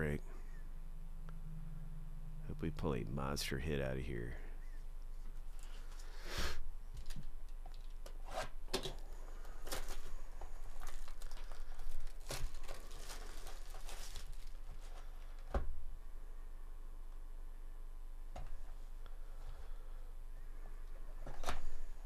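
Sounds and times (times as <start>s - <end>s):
plastic wrap crackling and rustling: 9.3s - 15.5s.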